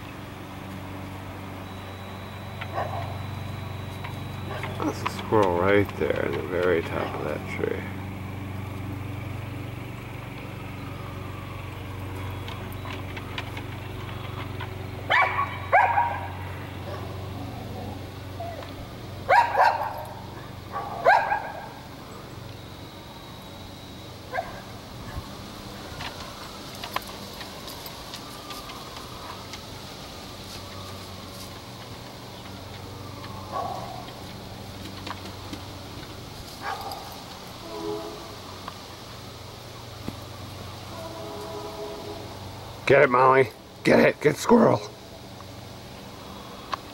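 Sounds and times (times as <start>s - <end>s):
dog barking: 2.7s - 3.2s, 15.1s - 17.2s, 19.3s - 21.8s, 24.3s - 24.7s, 33.5s - 34.0s, 36.6s - 37.1s.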